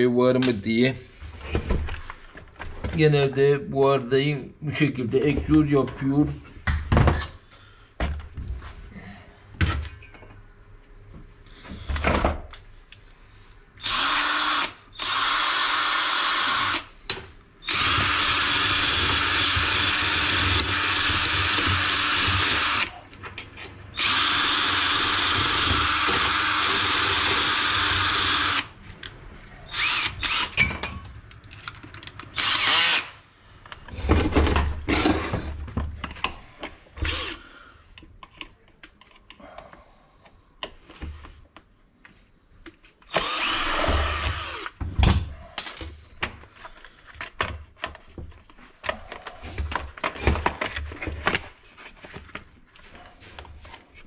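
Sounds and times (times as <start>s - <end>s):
knocks and clatter of handling: 44.8s - 53.9s.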